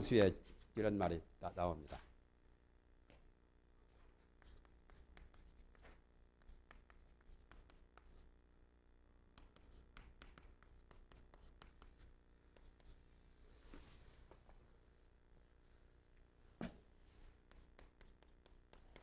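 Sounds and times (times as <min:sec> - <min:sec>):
chalk tapping and scratching: 0:04.2 - 0:08.3, 0:09.4 - 0:13.0, 0:17.3 - 0:19.0.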